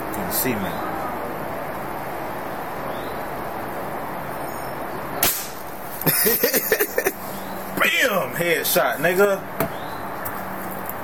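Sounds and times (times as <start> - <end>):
air rifle shot: 5.2 - 5.7.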